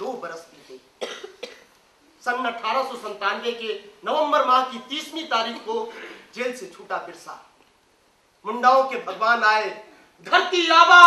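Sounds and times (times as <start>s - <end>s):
person coughing: 1.0s - 1.7s
person speaking: 2.1s - 7.6s, 8.4s - 11.0s.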